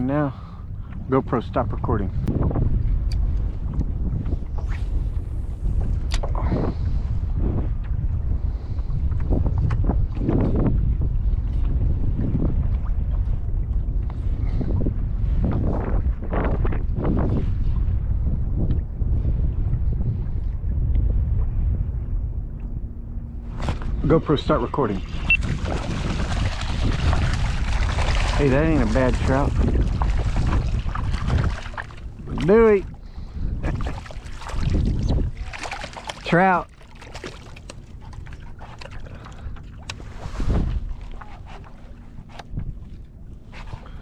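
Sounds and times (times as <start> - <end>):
wind rumbling on microphone: 0.0 - 44.0
water slapping against plastic hull: 25.2 - 33.0, 33.6 - 43.8.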